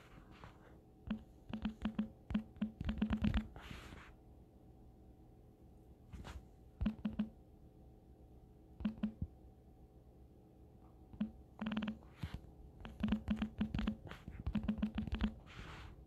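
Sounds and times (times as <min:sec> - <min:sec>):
soft rustle: 0:06.1 - 0:06.6.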